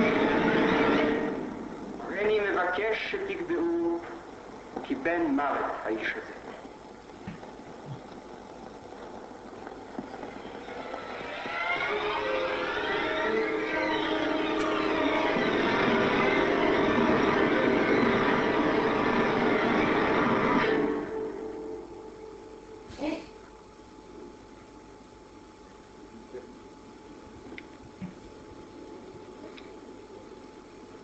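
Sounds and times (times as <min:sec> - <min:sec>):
ominous film score drone: 0:00.0 - 0:24.4.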